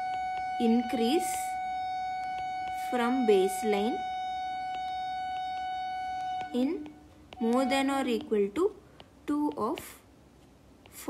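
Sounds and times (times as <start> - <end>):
steady whine: 0.0 - 8.8
stylus tapping on tablet screen: 0.0 - 11.0.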